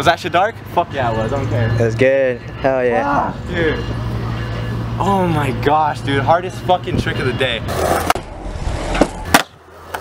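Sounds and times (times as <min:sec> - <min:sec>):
skateboard wheels rolling on concrete: 0:07.6 - 0:10.0
skateboard clacks: 0:08.9 - 0:10.0.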